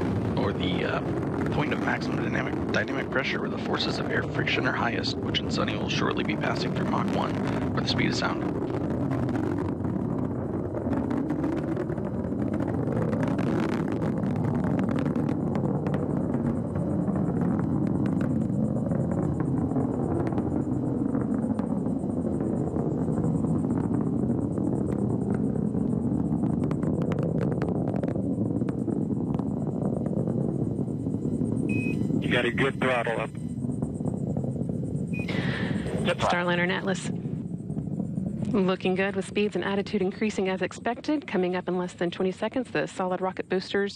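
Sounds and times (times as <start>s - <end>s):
rocket roar with crackle: 0.0s - 43.9s.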